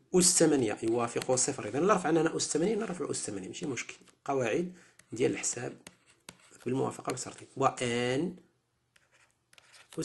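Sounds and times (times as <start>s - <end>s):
man speaking: 0.0s - 5.9s, 6.6s - 8.4s
stylus tapping and scratching: 0.2s - 7.6s, 8.9s - 10.0s.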